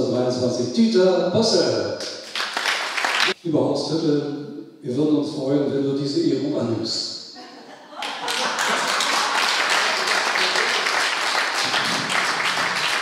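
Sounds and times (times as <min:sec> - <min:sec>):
audience applauding: 0:02.2 - 0:03.4, 0:08.0 - 0:13.0.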